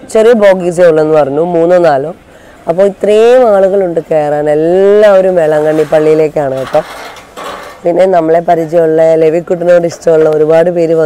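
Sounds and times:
person speaking: 0.0 - 6.9, 7.8 - 11.0.

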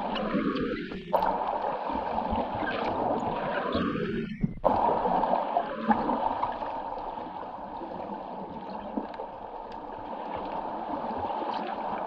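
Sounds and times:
underwater rush: 0.0 - 12.0
faint clicks and gurgling: 0.1 - 5.1, 7.8 - 12.0.

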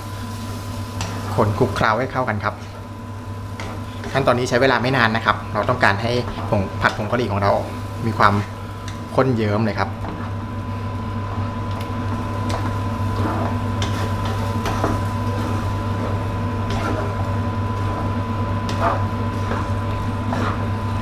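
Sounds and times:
spatula stirring sauce in a wok: 9.9 - 21.0.

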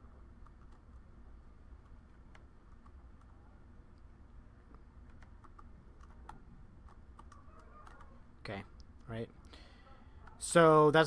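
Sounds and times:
low steady hum: 0.0 - 11.0
keyboard and mouse clicking: 1.8 - 3.4, 4.7 - 8.2.

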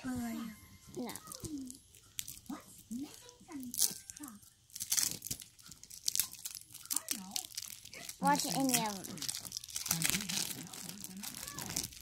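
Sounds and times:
plastic wrapper tearing and crinkling: 0.9 - 12.0.

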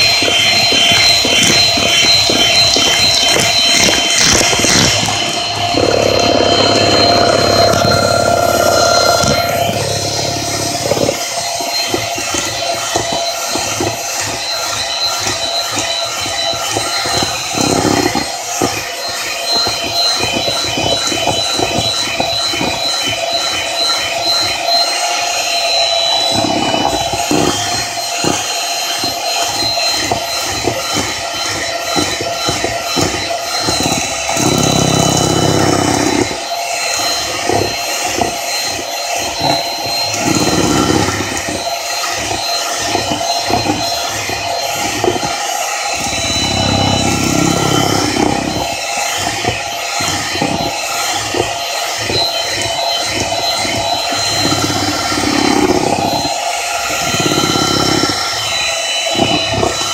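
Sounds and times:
electric mixer whining: 0.0 - 59.9.

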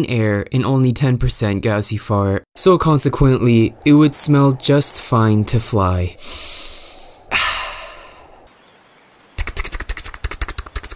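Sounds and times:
long airy hisses: 2.6 - 8.5
rapid flapping rattle: 9.4 - 10.9.

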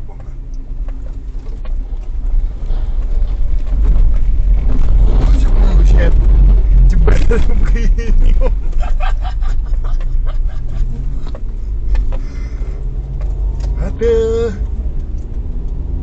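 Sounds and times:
road and engine rumble in car cabin: 0.0 - 16.0
suspension and body rattles: 0.0 - 16.0.

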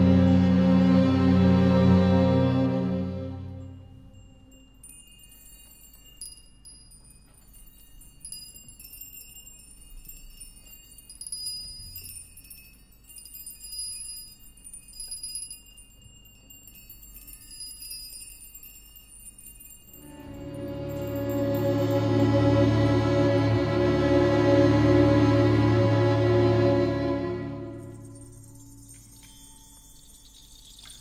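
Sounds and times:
tinkling chimes: 0.0 - 31.0
high ringing tone: 20.0 - 29.8
small metal percussion strikes: 27.6 - 31.0.

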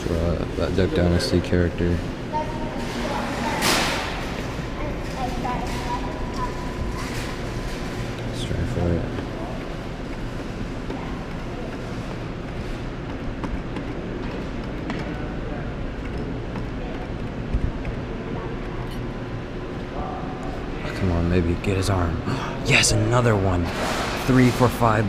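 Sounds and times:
low machine hum: 0.0 - 25.0.

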